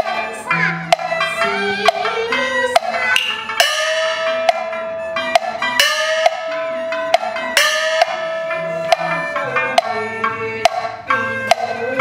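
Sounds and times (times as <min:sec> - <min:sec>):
wood-block knocks: 0:00.0 - 0:12.0
high sliding melodic notes: 0:00.3 - 0:12.0.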